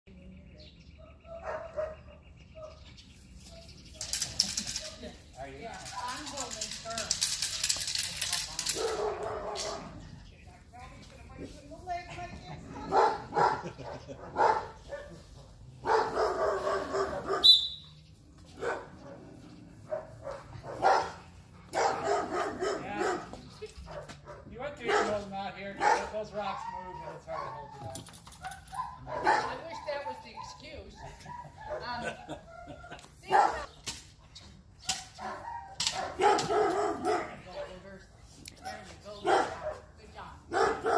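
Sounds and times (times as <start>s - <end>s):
large dog barking: 1.2s - 2.7s, 8.7s - 10.1s, 12.7s - 17.5s, 18.5s - 27.8s, 28.4s - 30.5s, 31.1s - 33.7s, 35.2s - 37.8s, 38.7s - 39.9s, 40.5s - 40.9s.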